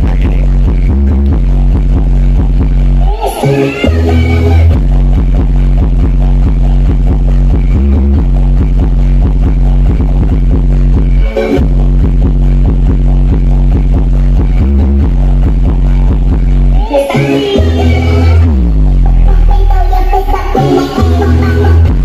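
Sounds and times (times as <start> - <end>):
electronic dance music: 0.0 - 22.0
heavy pounding bass: 0.0 - 22.0.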